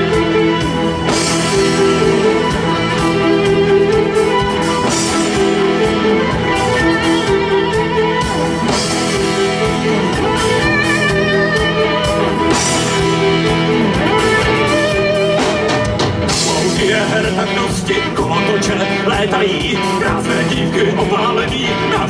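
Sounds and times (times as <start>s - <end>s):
wavering lead melody: 0.0s - 21.8s
live rock band playing: 0.0s - 22.0s.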